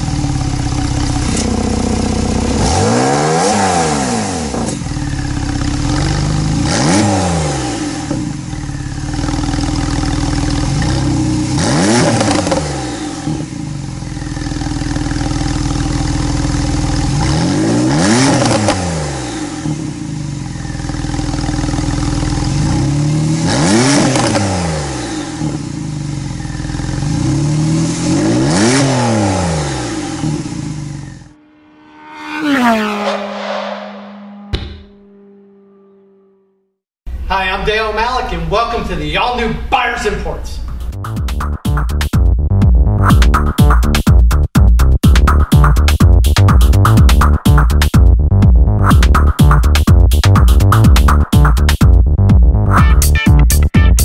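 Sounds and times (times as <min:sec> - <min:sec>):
car engine idling and revving: 0:00.0 - 0:36.8, 0:40.7 - 0:54.0.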